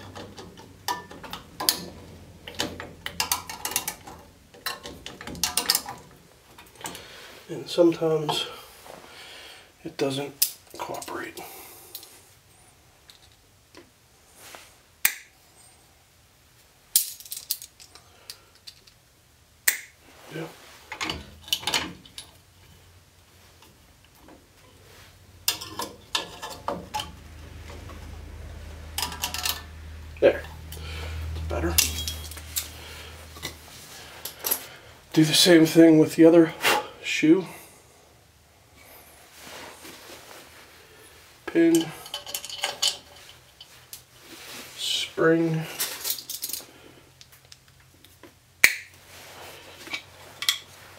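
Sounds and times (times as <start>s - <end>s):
metal clicks and clatter: 0.0s - 7.0s, 25.4s - 28.1s, 28.9s - 29.8s, 41.7s - 44.0s
small metal parts clinking: 0.0s - 7.0s, 13.0s - 13.4s, 16.9s - 19.0s, 25.4s - 28.0s, 28.9s - 29.8s, 31.6s - 33.6s, 41.7s - 44.0s, 45.8s - 46.8s.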